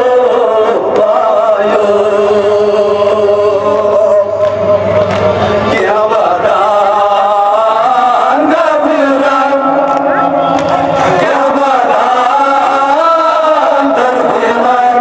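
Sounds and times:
men chanting into microphones: 0.0s - 15.0s.

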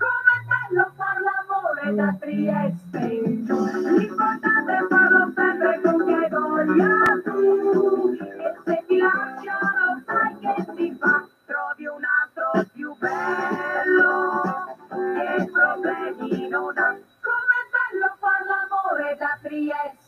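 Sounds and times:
pop song with sung vocals: 0.0s - 20.0s.

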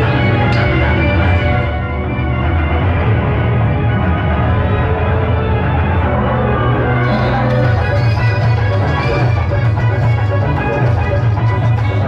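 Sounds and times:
loud music with heavy bass: 0.0s - 12.0s.

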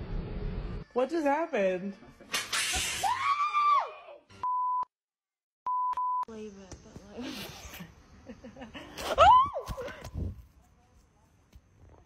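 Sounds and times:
censor bleep tone: 4.4s - 4.9s, 5.7s - 6.3s.

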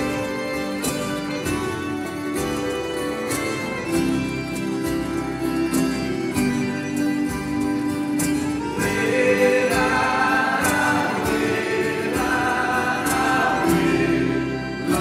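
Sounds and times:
instrumental accompaniment: 0.0s - 15.0s
congregation singing a hymn: 8.6s - 15.0s.

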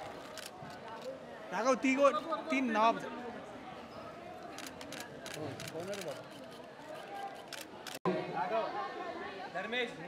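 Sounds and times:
background chatter: 0.0s - 10.0s
people talking over one another: 0.0s - 10.0s
camera shutters clicking: 4.5s - 6.6s.

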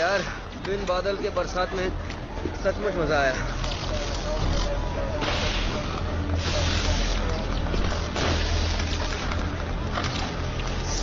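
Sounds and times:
steady low drone: 1.4s - 11.0s
hoses spraying water: 5.2s - 9.4s.

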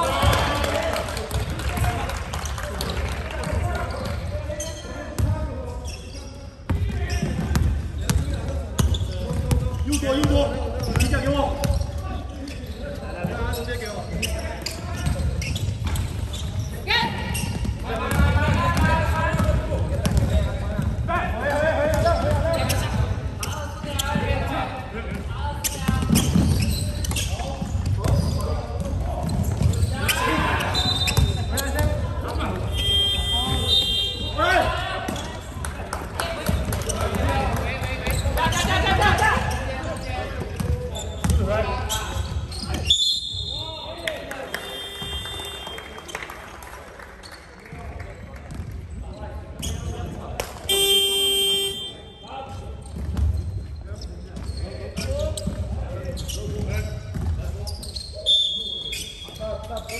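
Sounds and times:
basketball bouncing on court: 6.6s - 12.0s, 13.1s - 21.1s, 21.8s - 24.5s, 25.1s - 34.4s, 40.3s - 42.8s, 44.8s - 45.6s, 52.5s - 57.8s
players calling out: 28.1s - 35.5s, 36.4s - 46.3s, 50.7s - 52.6s.

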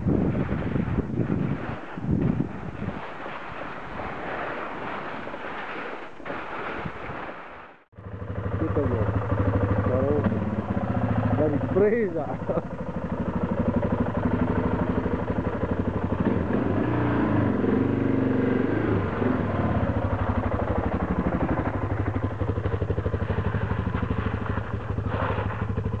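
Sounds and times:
dirt bike engine revving: 8.0s - 26.0s.

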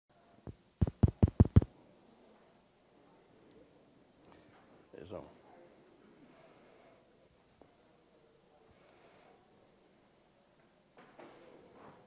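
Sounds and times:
sharp knocks: 0.8s - 1.7s.

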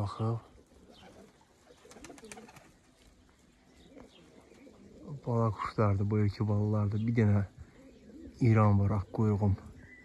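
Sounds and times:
pigeons cooing: 0.0s - 10.0s
quiet background hiss: 0.0s - 10.0s.

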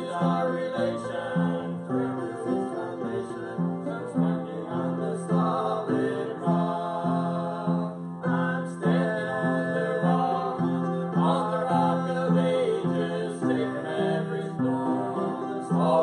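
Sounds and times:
male vocal trio singing gospel: 0.0s - 16.0s.

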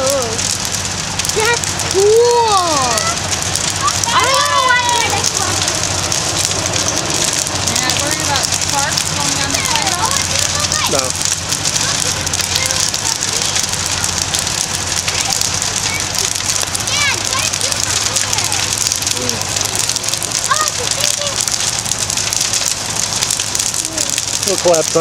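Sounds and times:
fire crackling: 0.0s - 25.0s.

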